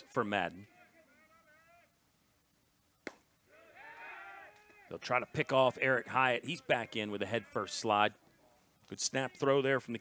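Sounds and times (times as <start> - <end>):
ball popping into mitt: 3.0 - 3.3
distant shouting: 3.4 - 8.6.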